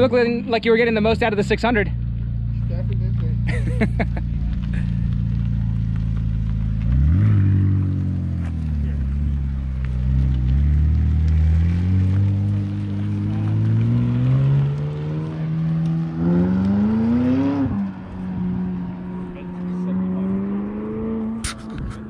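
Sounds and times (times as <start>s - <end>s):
car engine accelerating hard: 0.0s - 22.0s.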